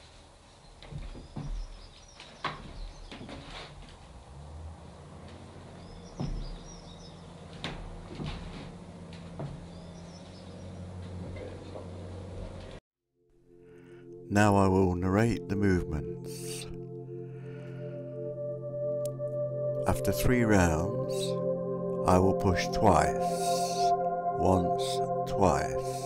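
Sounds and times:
small birds chirping: 0.6s - 3.4s, 5.2s - 7.7s, 9.0s - 12.2s.

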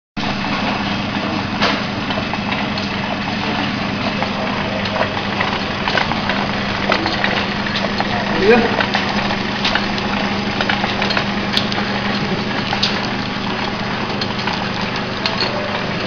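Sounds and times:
machine motor hum: 0.2s - 16.0s
machine mechanism clicks and knocks: 1.6s - 16.0s.

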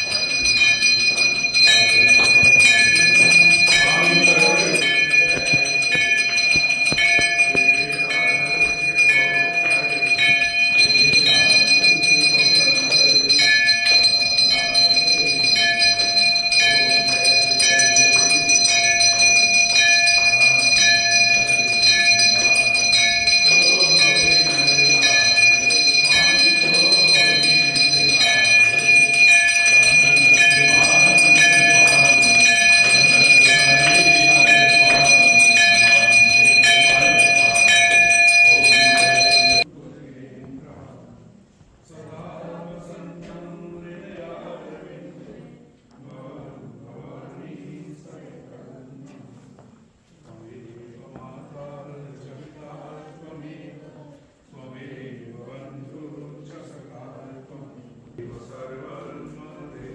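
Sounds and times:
temple bells ringing: 0.0s - 39.7s
devotional singing: 0.0s - 59.9s.

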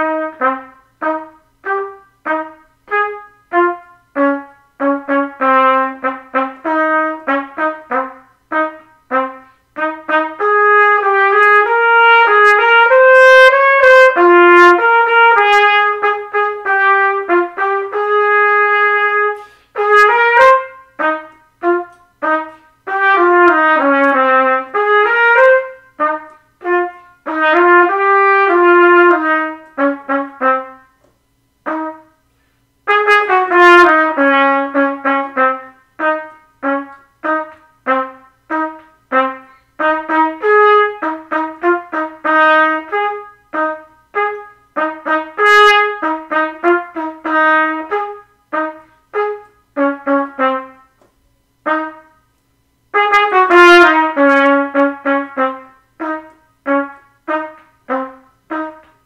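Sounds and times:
trumpet playing: 0.0s - 59.0s.

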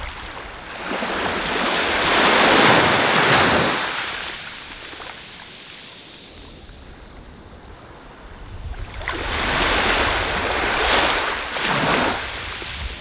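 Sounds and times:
ocean wave breaking: 0.0s - 5.2s.

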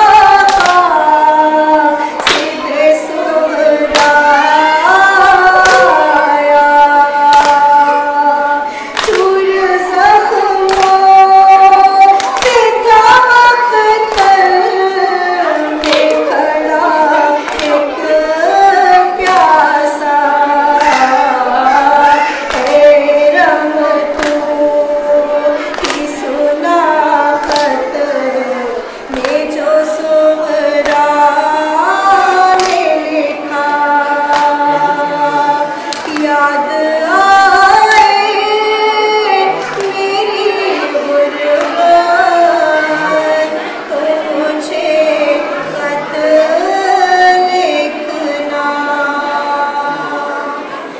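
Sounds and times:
woman chanting a lament: 0.0s - 50.8s.

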